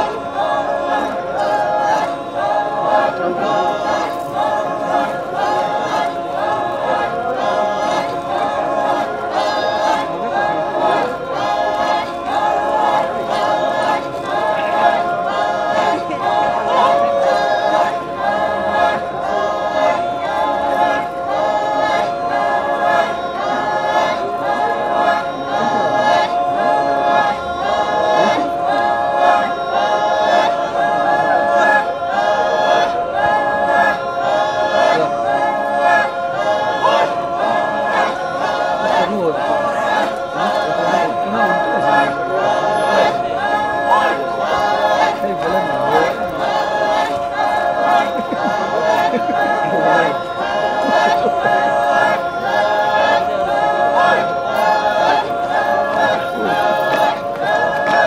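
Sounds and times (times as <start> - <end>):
men and women singing in chorus: 0.0 - 58.0.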